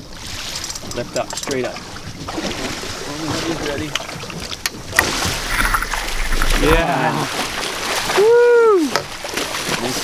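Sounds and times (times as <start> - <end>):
water noise: 0.0 - 10.0
wind: 0.0 - 10.0.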